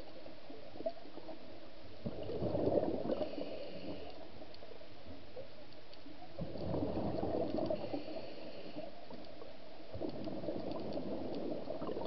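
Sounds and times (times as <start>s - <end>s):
underwater bubbling and gurgling: 0.0s - 12.0s
faint clicks: 2.1s - 12.0s.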